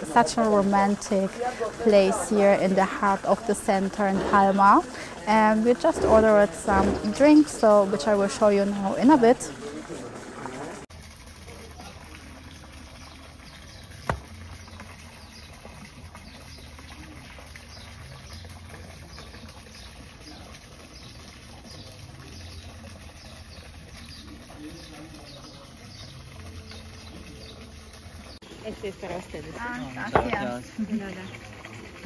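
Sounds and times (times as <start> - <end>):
small birds chirping: 11.8 - 30.6.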